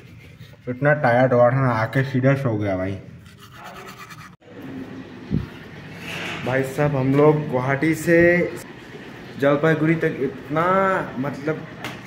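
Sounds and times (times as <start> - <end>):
toothbrush scrubbing teeth: 3.2 - 4.4.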